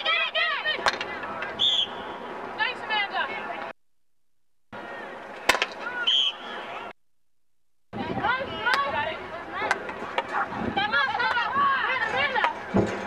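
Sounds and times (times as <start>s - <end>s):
players and spectators voices: 0.0s - 3.7s, 4.8s - 6.9s, 8.0s - 13.0s
short high whistle blasts: 1.6s - 2.0s, 6.0s - 6.5s
stick striking ball: 5.5s - 5.8s.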